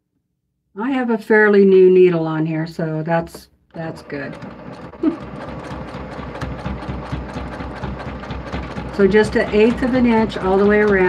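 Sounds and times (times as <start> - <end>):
electric sewing machine stitching: 3.7 - 11.0.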